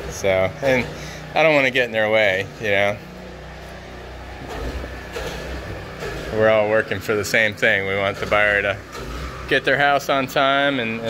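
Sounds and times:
low mechanical hum: 0:00.0 - 0:11.0.

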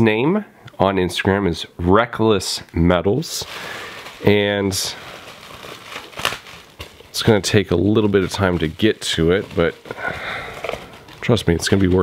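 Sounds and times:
bubble wrap crinkling: 0:03.2 - 0:12.0.

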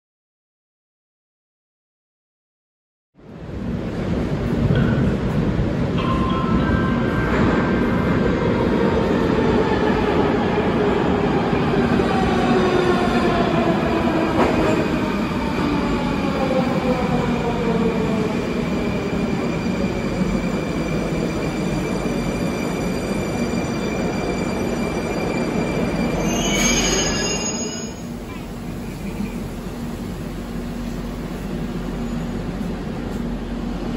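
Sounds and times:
high brake squeal: 0:21.6 - 0:28.5.

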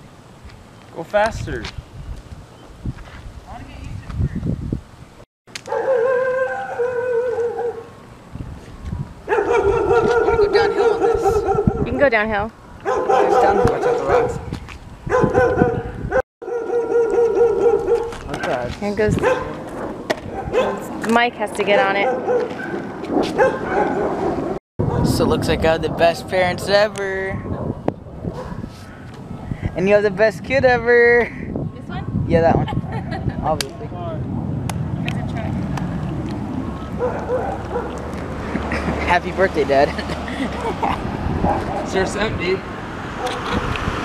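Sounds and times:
dog howling: 0:05.7 - 0:07.9, 0:09.3 - 0:11.9, 0:16.5 - 0:18.1.

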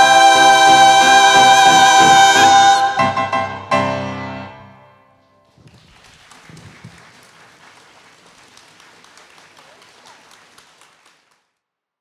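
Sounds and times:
choir singing final chord: 0:00.0 - 0:03.7
audience applause: 0:05.4 - 0:11.6.

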